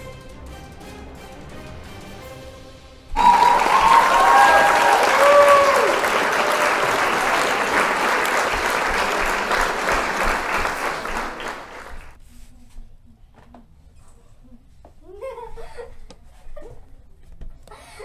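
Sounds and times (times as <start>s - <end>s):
crowd applause and cheering: 3.1s - 12.2s.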